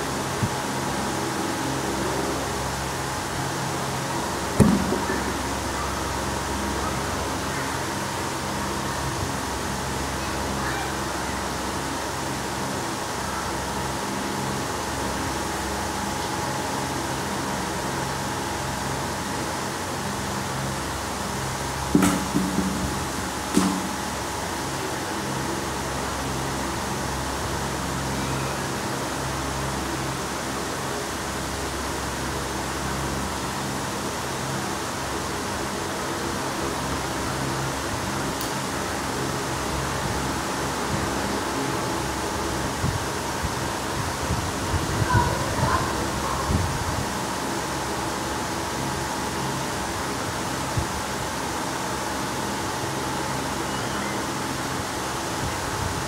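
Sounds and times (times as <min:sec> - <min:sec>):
mechanical hum and whirr: 0:00.0 - 0:56.0
knocks: 0:22.0 - 0:24.0.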